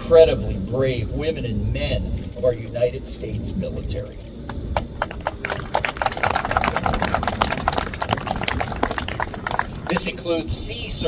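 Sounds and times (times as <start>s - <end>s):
crowd clapping: 4.5s - 10.2s.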